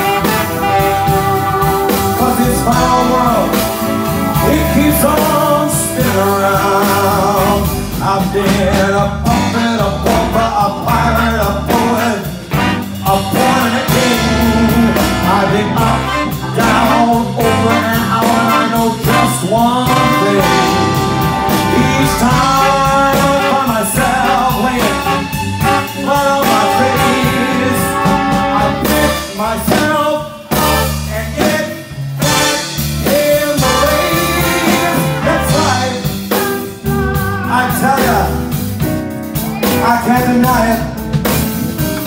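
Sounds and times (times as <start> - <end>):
brass section: 0.0 - 42.0
piano: 0.0 - 42.0
rhythm section steady beat: 0.0 - 42.0.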